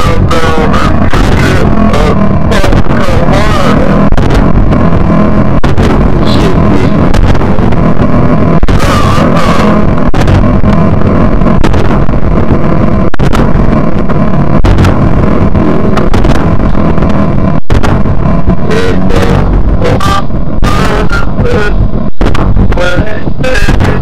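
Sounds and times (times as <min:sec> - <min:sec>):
industrial noise music: 0:00.0 - 0:24.0
warbling electronic tones: 0:00.0 - 0:24.0.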